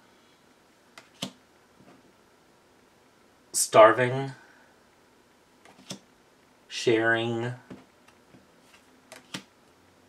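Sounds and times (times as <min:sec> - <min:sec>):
soft rustle of cards: 0:07.7 - 0:09.5.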